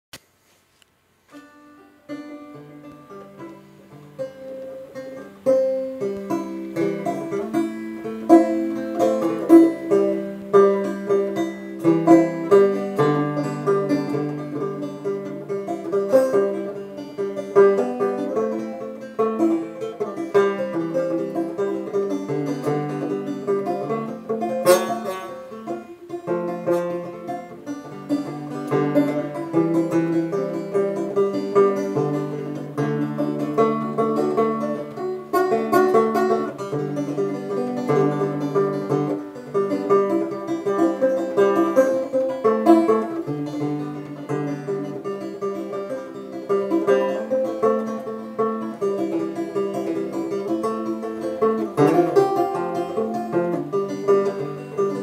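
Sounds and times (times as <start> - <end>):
banjo picking: 0.8 - 55.0.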